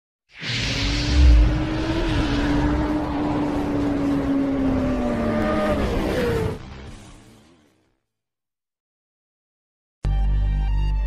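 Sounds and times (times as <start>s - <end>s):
rushing fiery noise: 0.4s - 6.4s
motorcycle engine: 1.1s - 7.8s.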